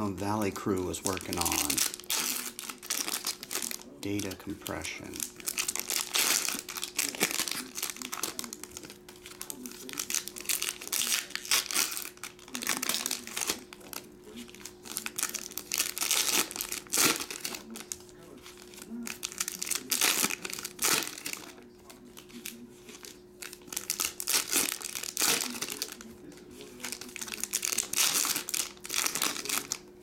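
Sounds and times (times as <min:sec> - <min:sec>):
foil wrapper crinkling and tearing: 0:00.0 - 0:29.9.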